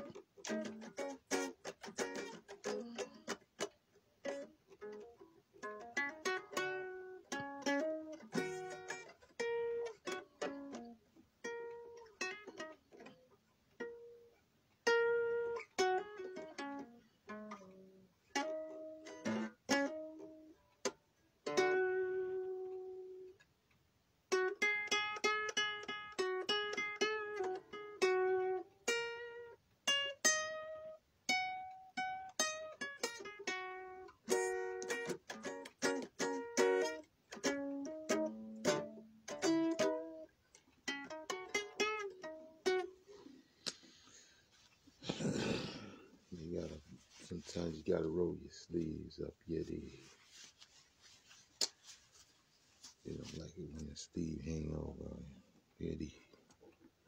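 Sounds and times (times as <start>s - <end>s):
guitar picking single notes: 24.3s - 43.0s.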